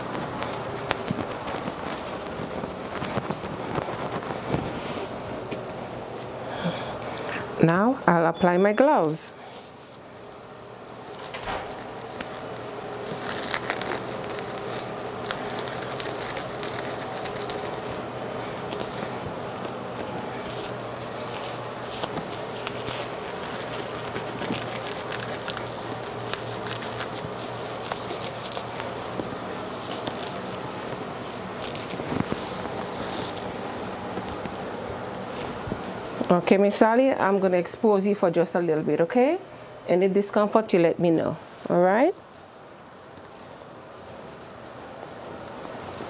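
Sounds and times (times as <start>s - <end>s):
gloves crackling and rubbing: 0.0s - 7.2s, 9.4s - 37.4s, 41.6s - 46.0s
steady background hum: 0.0s - 46.0s.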